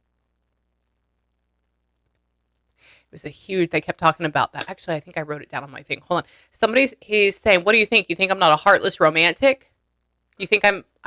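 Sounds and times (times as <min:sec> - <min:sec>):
soft intake of breath: 0:02.8 - 0:03.1.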